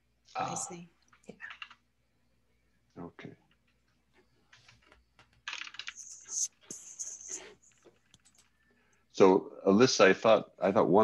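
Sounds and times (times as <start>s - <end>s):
typing on computer keyboard: 1.3s - 1.8s, 4.5s - 6.5s, 7.3s - 8.5s.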